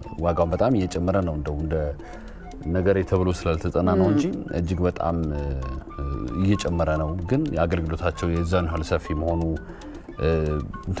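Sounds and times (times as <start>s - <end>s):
soft background music: 0.0s - 11.0s
person speaking: 0.9s - 9.2s.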